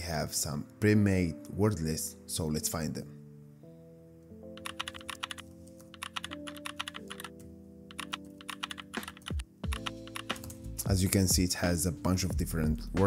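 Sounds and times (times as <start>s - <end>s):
background music with held notes: 0.0s - 13.0s
computer keyboard typing: 4.5s - 10.6s.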